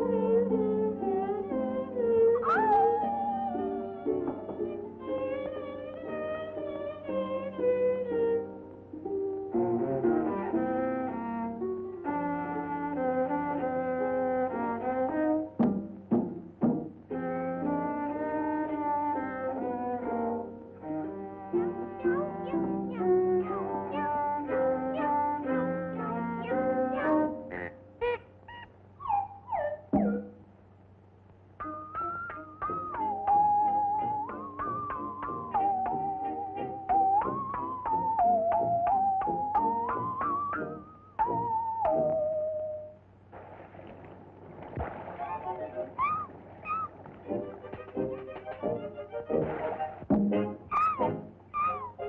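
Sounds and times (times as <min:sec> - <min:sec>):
cartoon orchestral music: 0:00.0 - 0:08.4, 0:09.7 - 0:15.6, 0:17.1 - 0:30.4, 0:31.6 - 0:43.0, 0:45.3 - 0:52.0
cartoon whimpering yelps: 0:02.4 - 0:03.4, 0:27.0 - 0:29.9, 0:46.0 - 0:46.9, 0:50.7 - 0:52.0.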